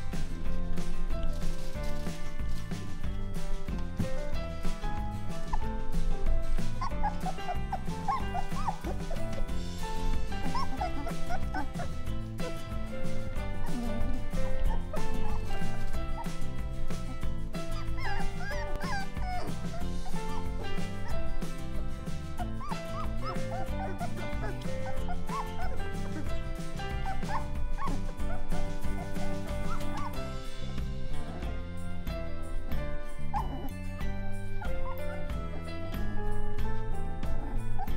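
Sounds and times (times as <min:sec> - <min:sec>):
background music: 0:00.0 - 0:37.9
puppies squeaking and whimpering: 0:00.0 - 0:37.9.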